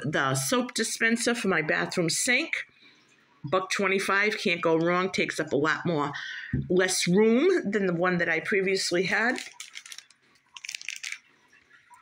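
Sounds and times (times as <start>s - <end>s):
crackly rustle: 9.2s - 12.0s.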